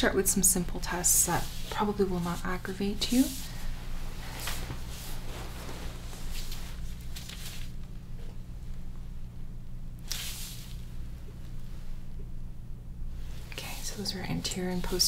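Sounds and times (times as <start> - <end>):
steady low hum: 0.0 - 15.0
gloved hands rubbing on skin and fabric: 0.2 - 8.0, 13.2 - 15.0.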